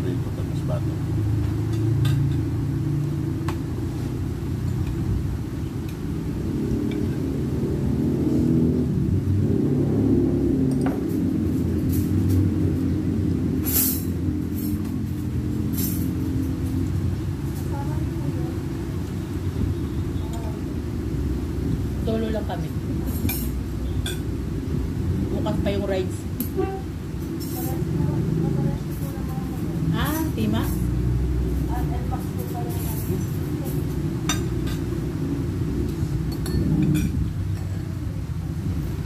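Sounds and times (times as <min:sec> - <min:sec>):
low rumble: 0:02.6 - 0:39.0
cutlery clinking on plates: 0:36.3 - 0:37.2.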